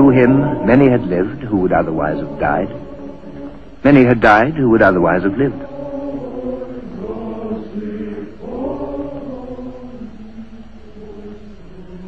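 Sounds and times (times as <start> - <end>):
choir singing slow chant: 0.0 - 12.0.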